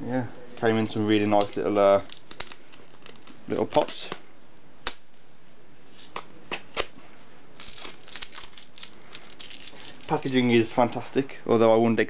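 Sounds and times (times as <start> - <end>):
tissue paper crinkling: 0.8 - 4.1, 7.6 - 11.2.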